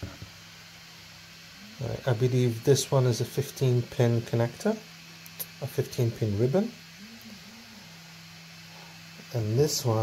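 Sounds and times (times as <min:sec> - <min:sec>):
faint low hum and hiss: 0:00.0 - 0:10.0
man talking: 0:01.8 - 0:04.8, 0:05.4 - 0:06.8, 0:09.2 - 0:10.0.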